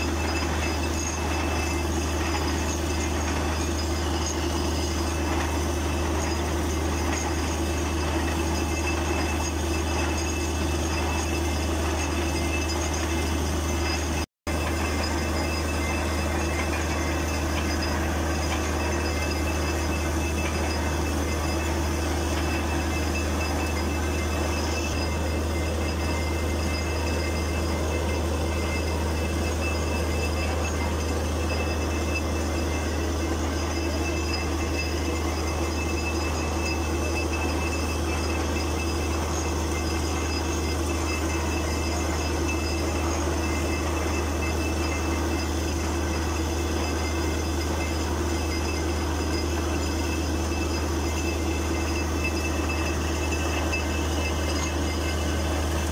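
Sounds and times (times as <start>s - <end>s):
drilling rig drone: 0.0s - 55.9s.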